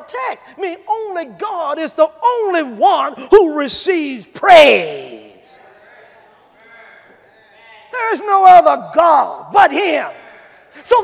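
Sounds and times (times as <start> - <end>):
faint congregation voices: 0.0 - 11.0.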